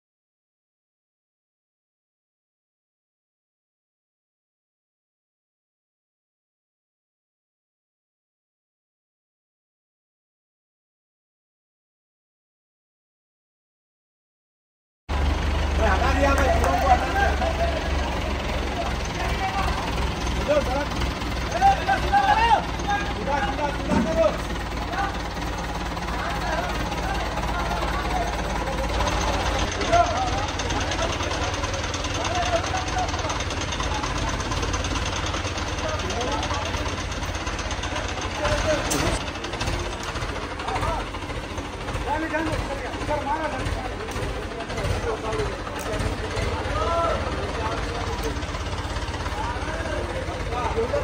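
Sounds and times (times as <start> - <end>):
crane diesel engine running: 15.1 - 51.0
hubbub of voices: 15.1 - 51.0.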